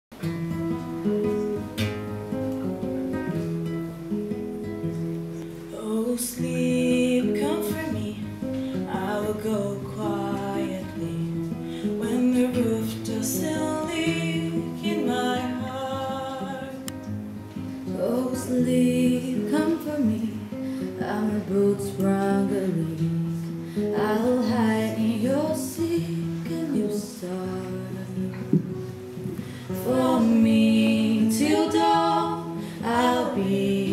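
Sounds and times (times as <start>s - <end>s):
classical guitar: 0.1s - 33.9s
woman singing: 5.7s - 17.2s, 17.9s - 33.9s.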